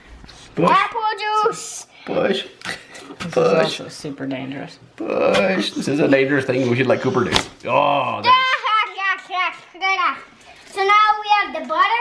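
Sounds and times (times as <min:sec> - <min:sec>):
child talking: 0:00.6 - 0:01.9, 0:08.2 - 0:12.0.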